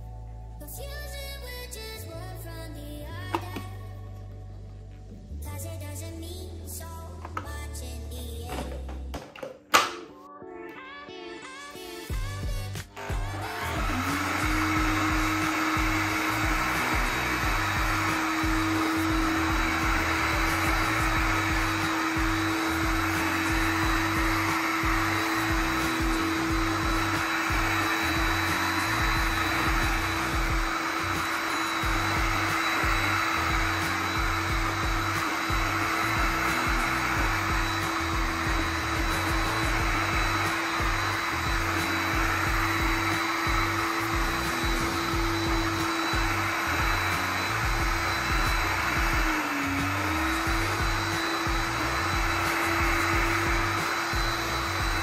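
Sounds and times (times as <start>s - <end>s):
vacuum floor washer running: 12.8s - 55.0s.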